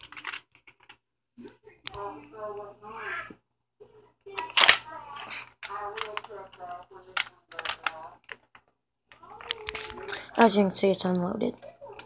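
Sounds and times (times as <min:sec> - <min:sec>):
young person talking: 0:04.3 - 0:06.4, 0:09.2 - 0:12.0.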